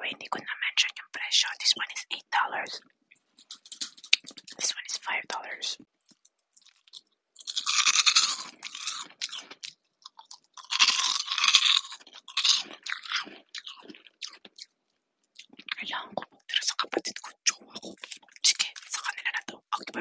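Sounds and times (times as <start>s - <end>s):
candy crunching being chewed: 2.8s - 19.9s.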